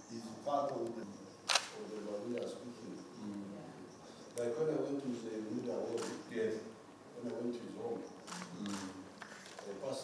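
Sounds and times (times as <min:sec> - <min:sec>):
camera shutter click: 0:01.5 - 0:01.8, 0:06.0 - 0:06.2.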